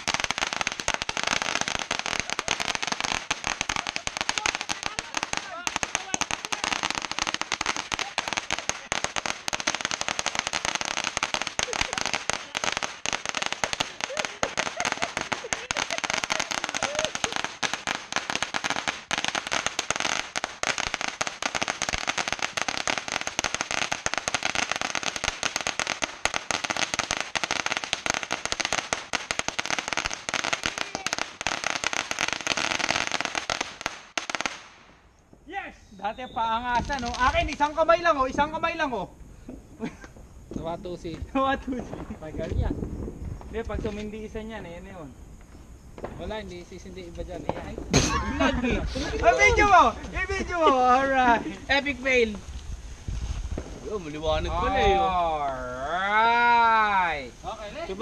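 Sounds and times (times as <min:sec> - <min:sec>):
firecrackers crackling: 0:00.0 - 0:58.0.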